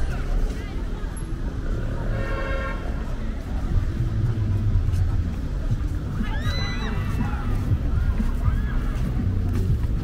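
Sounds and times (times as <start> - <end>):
crowd chatter: 0.0 - 10.0
road traffic rumble: 0.0 - 10.0.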